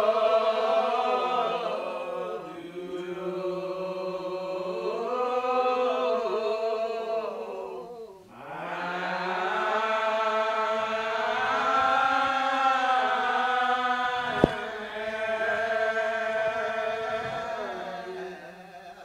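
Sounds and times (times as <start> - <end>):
group singing a slow hymn: 0.0 - 19.0.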